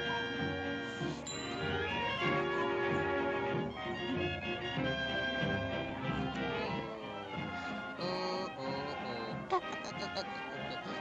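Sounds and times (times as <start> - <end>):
orchestral cartoon music: 0.0 - 11.0.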